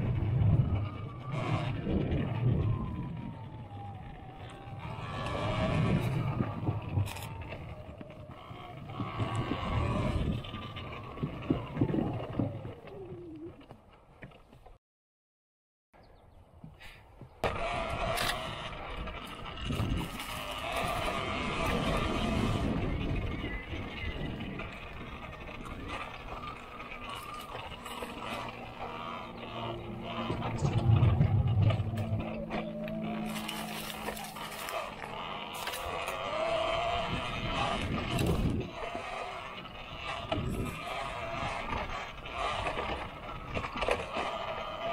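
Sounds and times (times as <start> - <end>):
electric motor whine: 0.0 - 13.2, 17.4 - 44.9
tyres on dirt trail: 0.0 - 14.8, 16.0 - 44.9
low drone: 17.4 - 44.9.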